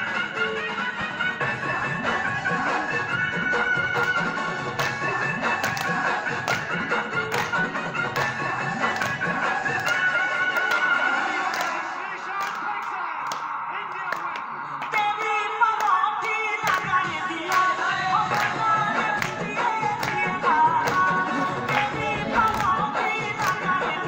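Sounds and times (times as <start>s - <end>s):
people singing: 1.6s - 24.0s.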